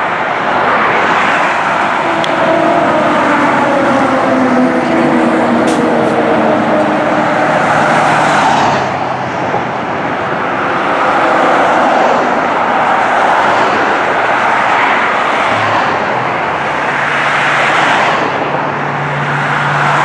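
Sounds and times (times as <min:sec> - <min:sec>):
fire engine approaching: 0:00.0 - 0:20.0
road traffic passing: 0:00.0 - 0:20.0.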